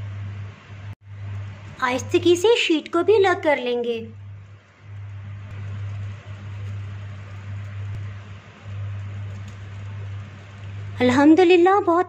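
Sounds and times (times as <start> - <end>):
low hum: 0.0 - 12.0
cling film rustling: 4.2 - 11.1.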